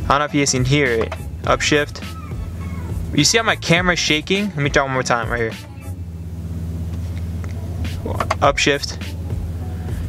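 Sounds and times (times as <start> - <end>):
car engine droning: 0.0 - 10.0.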